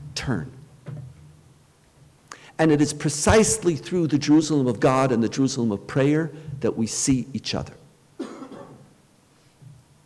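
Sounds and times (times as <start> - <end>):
person clearing throat: 8.2 - 8.9.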